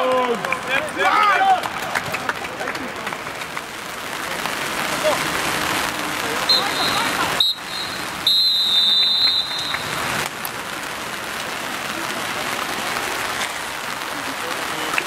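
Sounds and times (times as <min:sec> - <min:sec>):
outdoor crowd noise: 0:00.0 - 0:15.0
referee's whistle blasts: 0:06.5 - 0:10.0.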